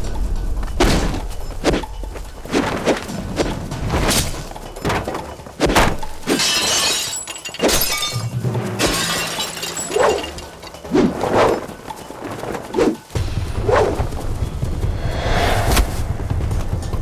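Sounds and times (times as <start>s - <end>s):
crashing smashing impacts: 4.0s - 10.4s
shattering debris: 4.0s - 10.7s.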